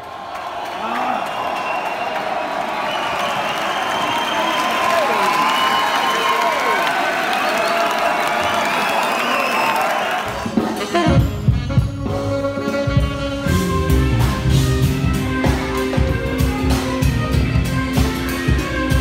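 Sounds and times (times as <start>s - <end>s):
audience cheering and applauding: 0.0s - 10.9s
band playing: 10.1s - 19.0s.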